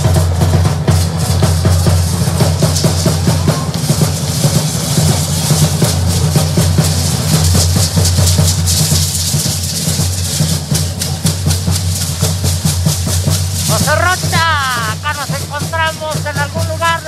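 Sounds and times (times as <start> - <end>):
drum beating fast rhythm: 0.0 - 17.0
dancers' steps: 5.6 - 17.0.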